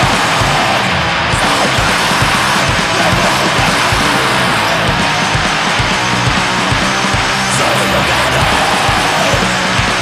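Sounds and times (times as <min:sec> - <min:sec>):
heavy distorted metal music: 0:00.0 - 0:10.0.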